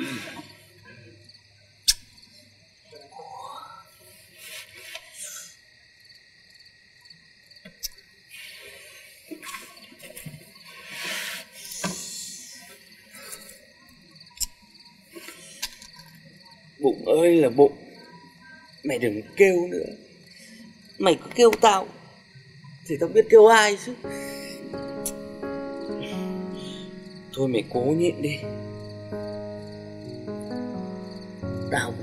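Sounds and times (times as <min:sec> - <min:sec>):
crickets chirping: 0:00.0 - 0:32.0.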